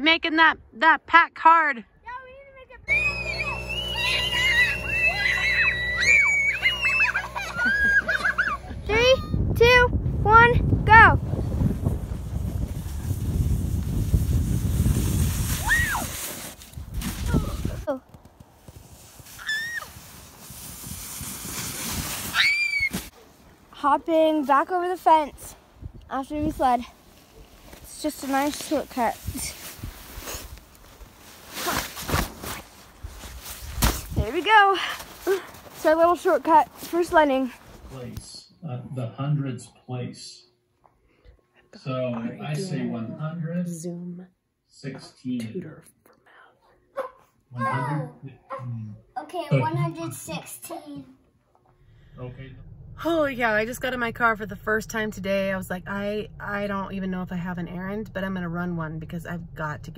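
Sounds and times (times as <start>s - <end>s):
children screaming and squealing: 2.9s - 9.4s, 19.4s - 20.0s, 22.3s - 23.1s
steady low hum: 2.9s - 14.9s, 51.7s - 59.9s
footsteps in snow: 11.5s - 23.6s, 27.0s - 38.1s
jacket fabric rubbing: 11.7s - 23.5s, 27.0s - 38.1s.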